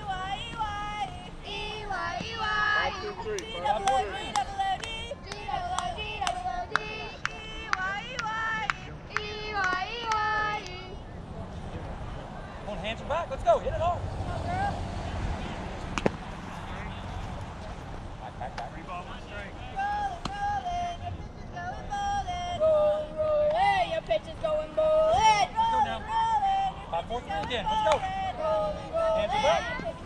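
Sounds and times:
girls chanting a cheer: 0:00.0 - 0:11.0, 0:27.4 - 0:30.0.

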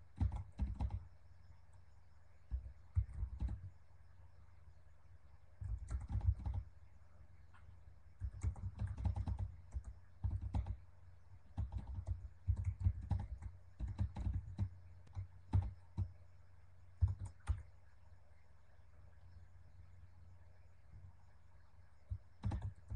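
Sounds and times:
typing on computer keyboard: 0:00.1 - 0:01.1, 0:02.5 - 0:03.7, 0:05.6 - 0:06.7, 0:08.2 - 0:10.8, 0:11.5 - 0:16.2, 0:17.0 - 0:17.7, 0:22.1 - 0:22.9.

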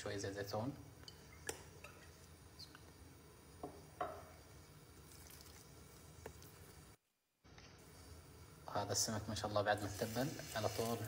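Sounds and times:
faint oil drips: 0:04.9 - 0:06.9.

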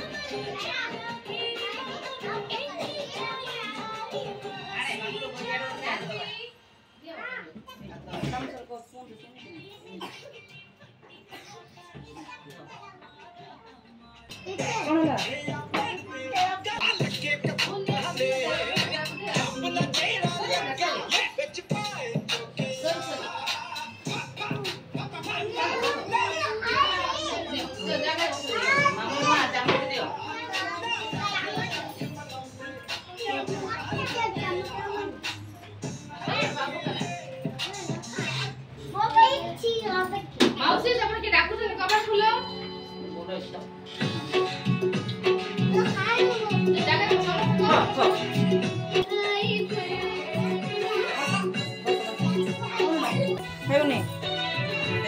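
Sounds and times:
young children chattering: 0:00.0 - 0:55.0
background music: 0:13.7 - 0:38.8, 0:41.6 - 0:55.0.

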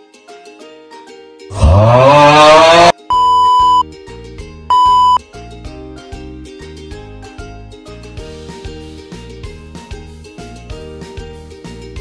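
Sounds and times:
loud yell rising in pitch: 0:01.5 - 0:02.9
high censor beep tones: 0:03.0 - 0:03.8, 0:04.7 - 0:05.2
soft background music with beat: 0:03.0 - 0:12.0.

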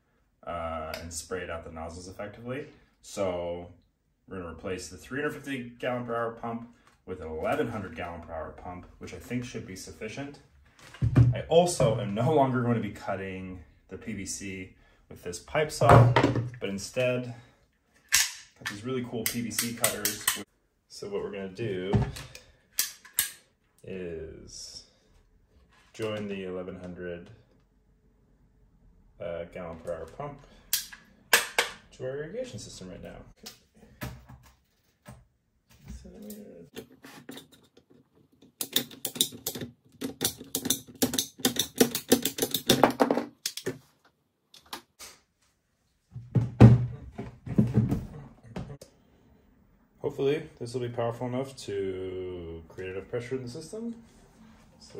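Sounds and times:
pipe cutter snapping clicks: 0:19.2 - 0:20.4, 0:30.7 - 0:31.8.

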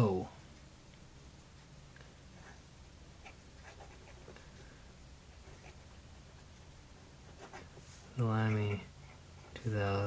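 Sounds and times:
low steady hum: 0:00.0 - 0:10.0
fountain pen scratching paper: 0:03.2 - 0:04.3, 0:07.2 - 0:07.8.

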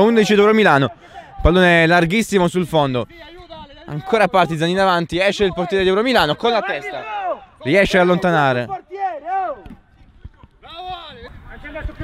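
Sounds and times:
players shouting: 0:03.0 - 0:11.2.

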